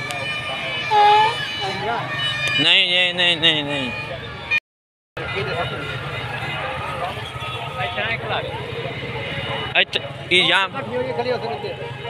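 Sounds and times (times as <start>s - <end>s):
engines rumbling: 0.0s - 4.6s, 5.2s - 12.0s
loud high call: 0.8s - 1.9s.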